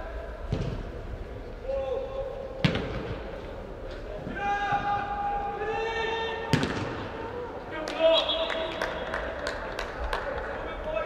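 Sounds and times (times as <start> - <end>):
players shouting in echoing hall: 0.0 - 11.0
ball kicked thud: 0.5 - 0.9, 2.6 - 3.2, 6.5 - 7.1.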